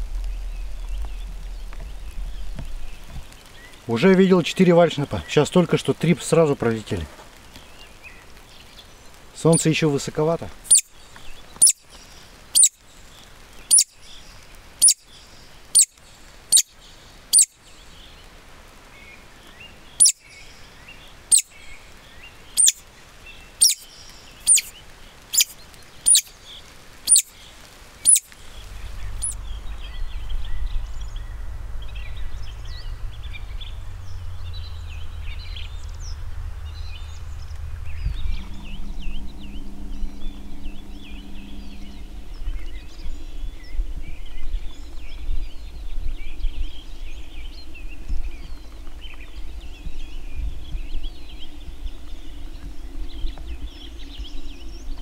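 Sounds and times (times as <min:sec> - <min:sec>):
low steady rumble: 0:00.0 - 0:05.4, 0:19.8 - 0:55.0
small birds chirping: 0:00.0 - 0:55.0
woodcock decoy call squeaks: 0:10.7 - 0:10.9, 0:11.6 - 0:11.8, 0:22.6 - 0:22.8, 0:23.6 - 0:23.8, 0:24.5 - 0:24.7, 0:26.1 - 0:26.3, 0:27.1 - 0:27.3, 0:28.1 - 0:28.3.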